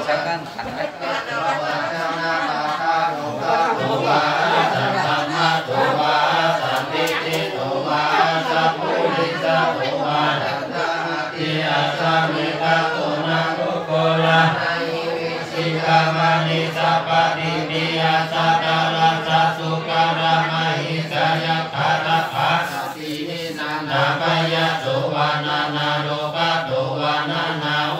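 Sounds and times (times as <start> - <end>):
monks chanting in monotone: 0.0 - 27.9.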